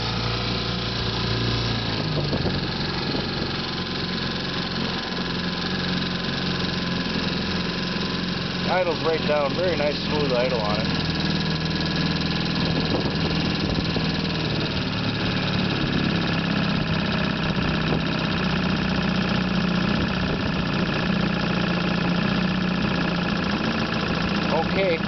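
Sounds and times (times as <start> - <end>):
outboard motor idling: 0.0 - 25.0.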